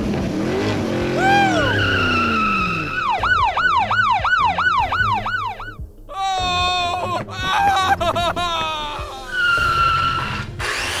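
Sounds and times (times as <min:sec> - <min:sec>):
cartoon whistling downward slide: 0:01.2 - 0:03.5
police siren yelp: 0:01.2 - 0:05.8.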